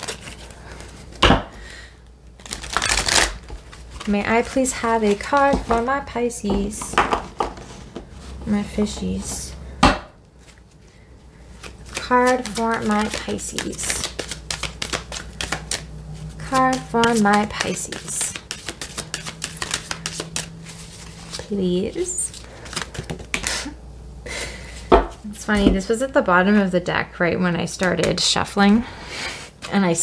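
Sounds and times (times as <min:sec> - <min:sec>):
cards shuffling: 0:00.0 - 0:01.2, 0:02.4 - 0:06.0, 0:11.4 - 0:23.7
cards snapping: 0:11.6 - 0:20.5.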